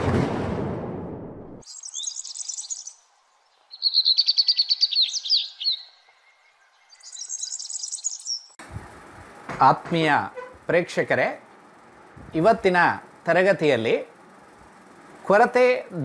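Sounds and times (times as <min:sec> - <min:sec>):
birdsong chirping and trills: 0:01.6 - 0:09.4.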